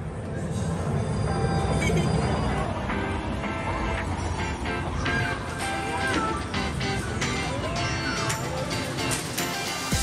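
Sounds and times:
arcade game machines: 0:00.0 - 0:10.0
crowd noise: 0:00.2 - 0:10.0.

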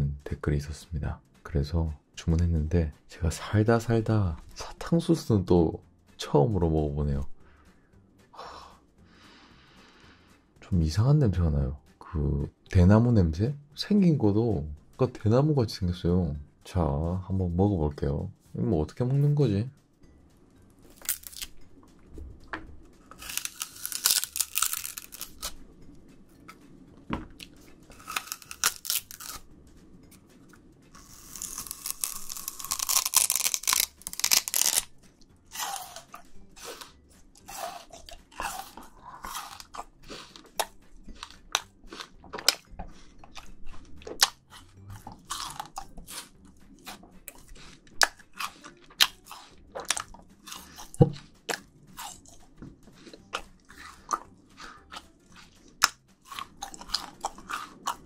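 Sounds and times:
sugarcane being bitten and chewed: 0:20.8 - 0:22.0, 0:23.0 - 0:25.6, 0:26.4 - 0:29.5, 0:30.1 - 0:58.0.

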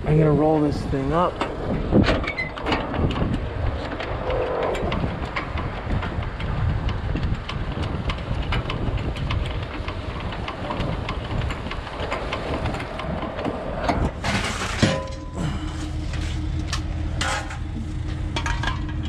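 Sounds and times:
tarp roller mechanical rumble: 0:00.0 - 0:19.0
small clicks and rattles: 0:01.4 - 0:15.3.

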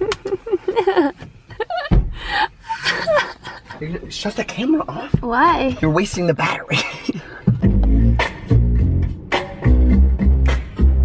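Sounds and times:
thump: 0:01.9 - 0:02.2
person gasping: 0:02.1 - 0:02.6.

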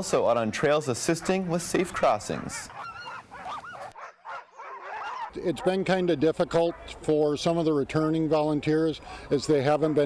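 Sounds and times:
sled dogs yelping: 0:00.5 - 0:10.0.

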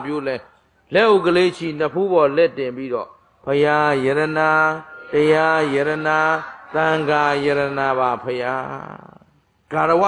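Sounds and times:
man chanting in held tones: 0:00.0 - 0:10.0.

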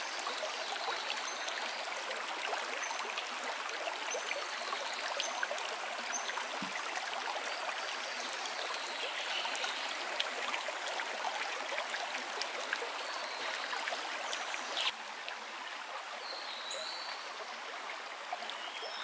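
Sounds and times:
stream flowing over stones: 0:00.0 - 0:19.0.

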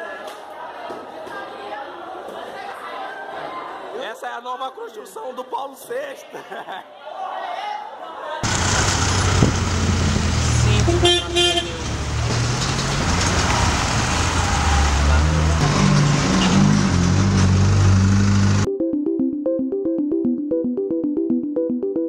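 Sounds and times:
vehicle noise: 0:08.4 - 0:18.7
vehicle horn tooting: 0:10.6 - 0:12.0.

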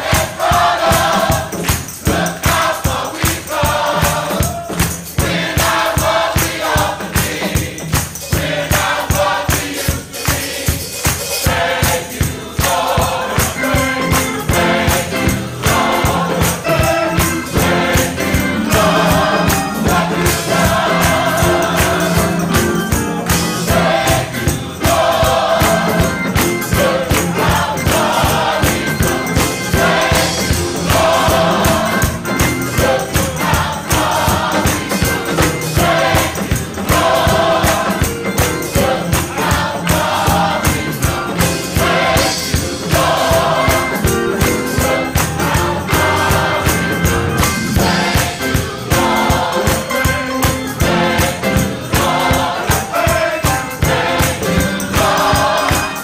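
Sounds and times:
fast percussion beat: 0:00.0 - 0:56.0
gospel choir singing: 0:00.0 - 0:56.0.

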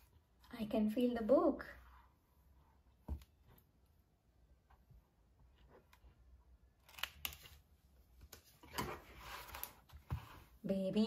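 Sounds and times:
scratchy rustling and scraping: 0:08.6 - 0:10.6.

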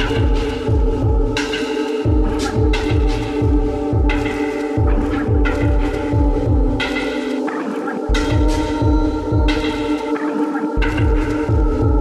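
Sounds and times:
deep kick drum: 0:00.0 - 0:01.4, 0:02.0 - 0:06.8, 0:08.1 - 0:09.7, 0:10.8 - 0:12.0.

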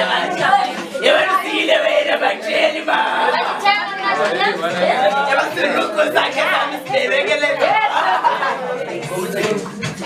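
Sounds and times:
group chatter: 0:00.0 - 0:10.0.

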